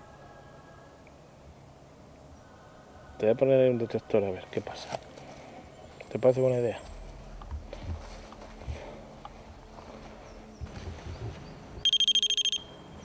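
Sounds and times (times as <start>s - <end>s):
rapid high-pitched electronic beeps: 11.8s - 12.8s.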